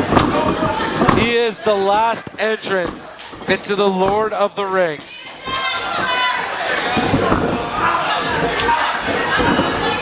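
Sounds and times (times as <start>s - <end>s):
crowd shouting and cheering: 0.0s - 10.0s
children's voices: 4.8s - 10.0s.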